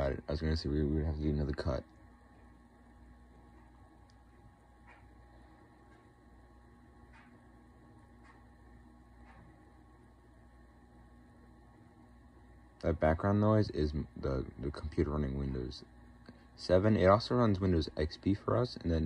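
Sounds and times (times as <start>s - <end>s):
desktop computer humming: 0.0s - 19.0s.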